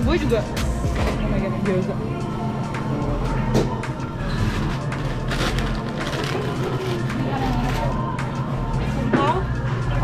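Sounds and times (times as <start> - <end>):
background music: 0.0 - 10.0
faint voices: 6.0 - 10.0.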